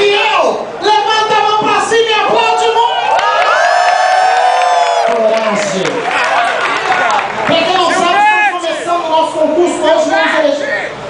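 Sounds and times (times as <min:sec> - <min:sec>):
audience cheering and whooping: 0:02.8 - 0:08.6.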